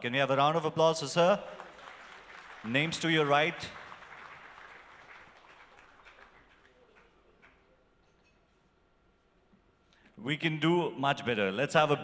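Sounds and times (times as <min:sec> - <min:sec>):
scattered applause: 0:01.2 - 0:07.9.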